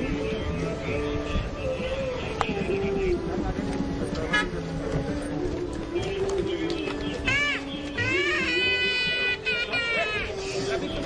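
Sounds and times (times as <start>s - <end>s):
crowd chatter: 0.0s - 11.0s
car horns: 4.2s - 4.7s.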